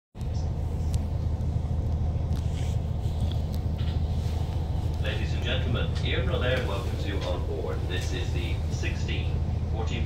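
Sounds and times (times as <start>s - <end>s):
diesel railcar engine rumble: 0.2s - 10.0s.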